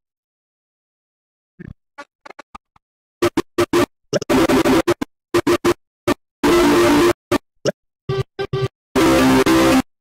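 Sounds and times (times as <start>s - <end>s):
chopped cartoon soundtrack snippets: 1.6s - 6.2s.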